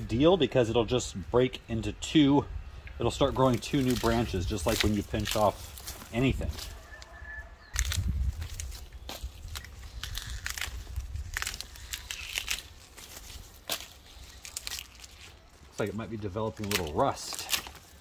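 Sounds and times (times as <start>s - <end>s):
leaves tearing and snapping: 3.2s - 7.1s, 7.7s - 18.0s.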